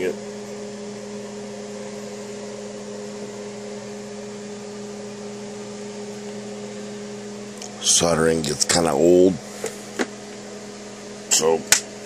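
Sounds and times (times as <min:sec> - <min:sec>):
machine hum: 0:00.0 - 0:12.0.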